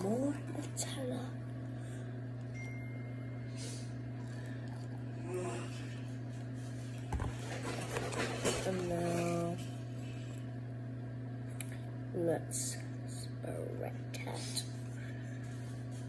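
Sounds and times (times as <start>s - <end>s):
steady low hum: 0.0s - 16.0s
person humming: 5.1s - 6.0s.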